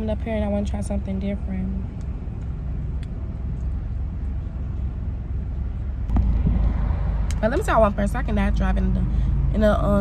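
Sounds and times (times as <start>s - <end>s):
car engine rumbling inside cabin: 0.0s - 10.0s.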